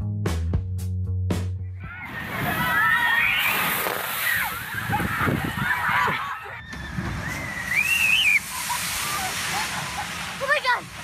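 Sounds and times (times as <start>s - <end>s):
people shrieking and yelling: 1.8s - 11.0s
water rushing and splashing: 1.8s - 11.0s.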